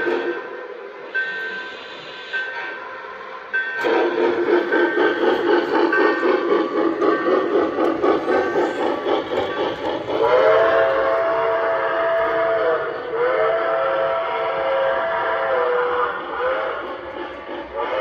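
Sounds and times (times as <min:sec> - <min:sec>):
multi-note steam whistle blasts: 0:00.0 - 0:05.4, 0:10.1 - 0:17.0
rapid steam locomotive chuffing: 0:00.0 - 0:18.0.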